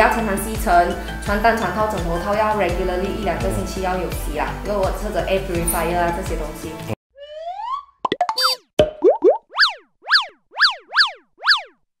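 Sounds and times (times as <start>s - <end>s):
swooping cartoon chirps: 7.2s - 11.8s
cartoon clicks and pops: 7.7s - 9.8s.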